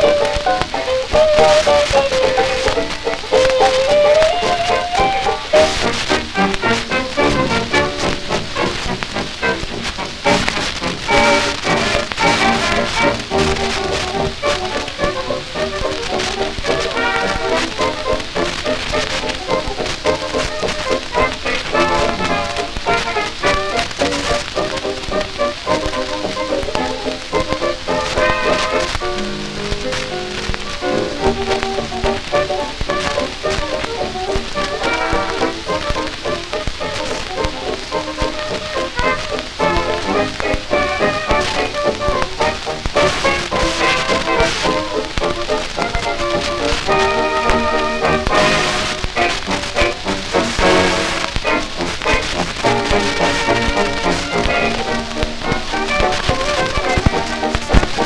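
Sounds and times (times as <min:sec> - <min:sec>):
dance band record playing: 0:00.0 - 0:58.0
record surface crackle and ticks: 0:00.0 - 0:58.0.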